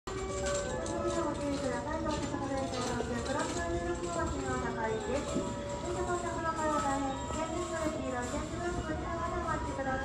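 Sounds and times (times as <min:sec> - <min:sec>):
low station rumble: 0:00.1 - 0:10.0.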